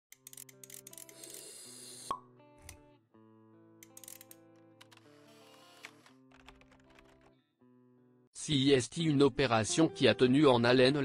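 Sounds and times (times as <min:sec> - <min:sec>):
soft sustained music: 0:02.2 - 0:11.0.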